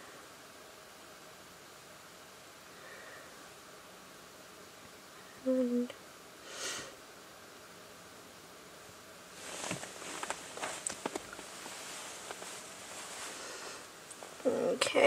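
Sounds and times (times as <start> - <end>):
soft hiss: 0.0 - 15.0
handling rustling and clicks: 9.4 - 13.1.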